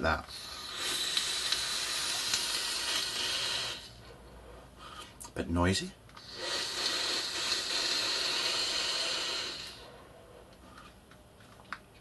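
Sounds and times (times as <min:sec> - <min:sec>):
airy hiss of air drawn through atomizer: 0:00.3 - 0:04.0, 0:06.2 - 0:09.8.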